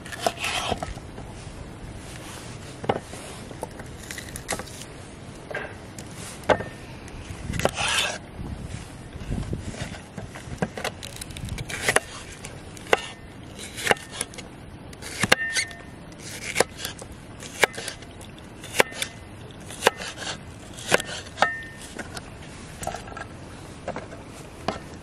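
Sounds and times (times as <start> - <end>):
soft cutting and rustling: 0.0 - 5.1, 7.1 - 23.3.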